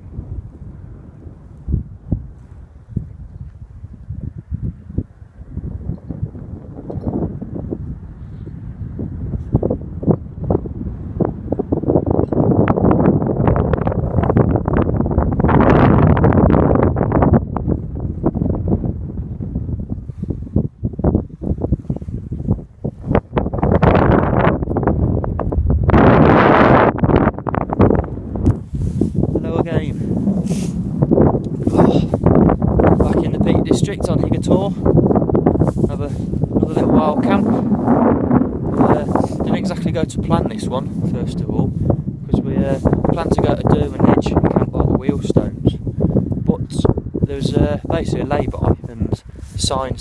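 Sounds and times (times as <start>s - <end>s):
strong wind buffeting microphone: 0.0s - 50.0s.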